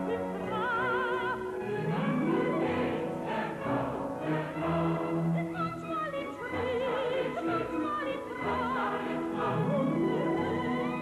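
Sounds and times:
mixed chorus singing: 0:00.0 - 0:05.7, 0:06.5 - 0:11.0
orchestra playing: 0:00.0 - 0:06.0.

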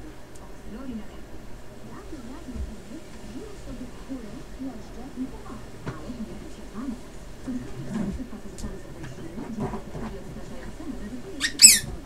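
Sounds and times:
sharp high squeak: 0:11.4 - 0:11.9.

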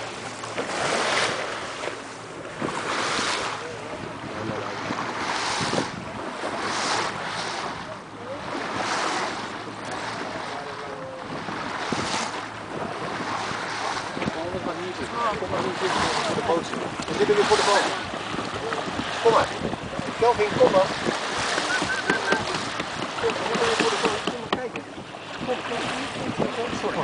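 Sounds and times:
water lapping around a boat: 0:00.0 - 0:27.0
wind buffeting microphone: 0:00.0 - 0:27.0.

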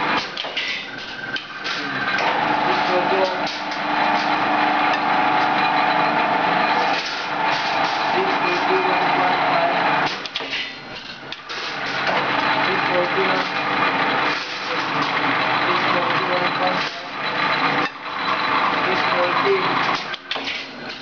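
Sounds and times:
machinery humming and hissing: 0:00.0 - 0:21.0.

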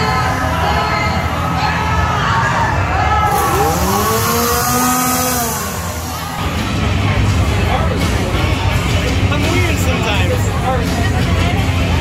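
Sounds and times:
motor revving: 0:03.3 - 0:06.6.

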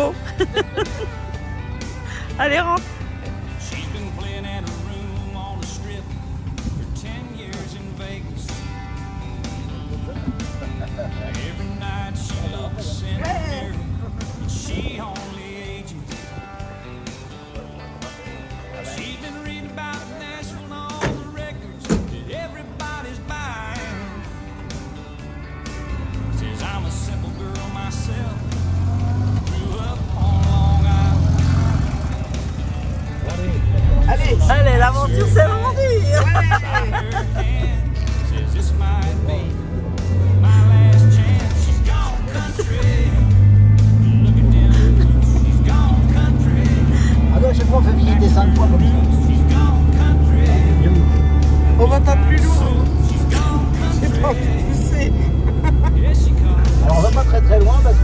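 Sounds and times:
background music with singing: 0:00.0 - 0:58.0
small car engine rumbling: 0:00.0 - 0:58.0
indistinct voices: 0:02.0 - 0:16.5, 0:17.6 - 0:24.5, 0:25.9 - 0:58.0.

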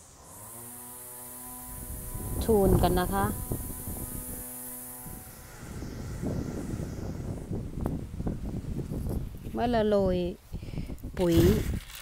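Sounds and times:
wind buffeting microphone: 0:01.7 - 0:12.0.

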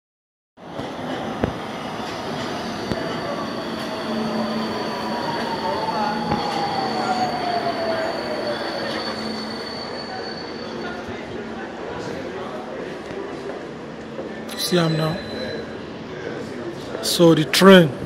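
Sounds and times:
train rumbling: 0:00.6 - 0:15.0
thin high tone: 0:02.6 - 0:11.1.

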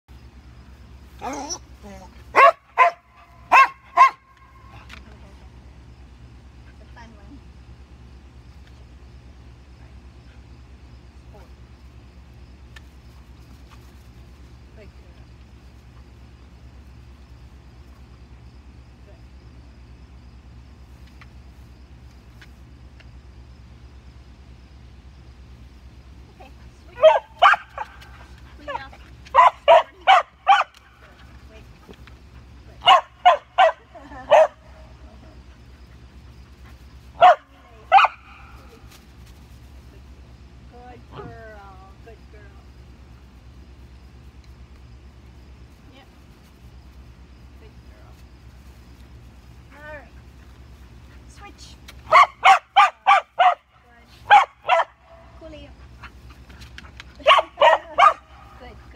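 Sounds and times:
dog barking: 0:02.3 - 0:04.3, 0:27.0 - 0:28.0, 0:29.3 - 0:30.8, 0:32.8 - 0:34.6, 0:37.2 - 0:38.4, 0:52.1 - 0:53.7, 0:54.3 - 0:55.2, 0:57.2 - 0:58.3.

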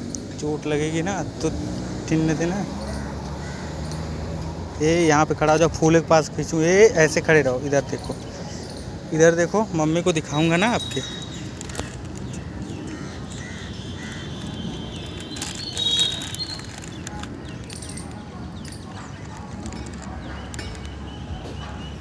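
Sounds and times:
high bird-like chirp: 0:08.2 - 0:22.0.

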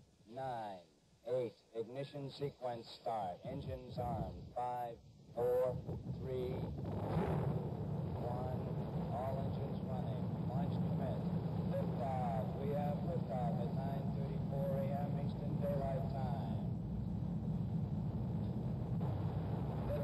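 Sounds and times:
rocket engines rumbling: 0:05.3 - 0:20.0
person talking: 0:08.2 - 0:16.6.

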